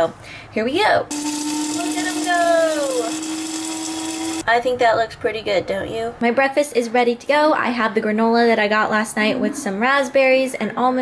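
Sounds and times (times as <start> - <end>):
electric coffee grinder whirring: 1.1 - 4.4.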